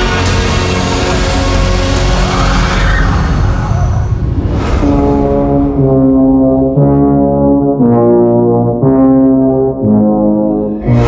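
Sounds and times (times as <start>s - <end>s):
deep noisy drone: 0.0s - 11.0s
rushing sweep: 0.2s - 7.3s
low brass chord: 4.8s - 11.0s.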